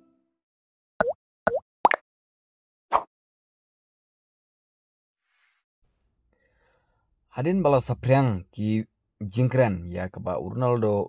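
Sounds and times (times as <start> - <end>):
cartoon pop sound effects: 1.0 - 2.0.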